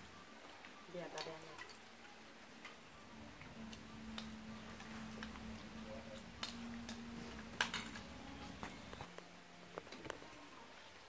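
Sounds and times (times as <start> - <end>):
faint steady hum: 0.0 - 11.0
chopsticks clicking on bowls: 3.4 - 8.8.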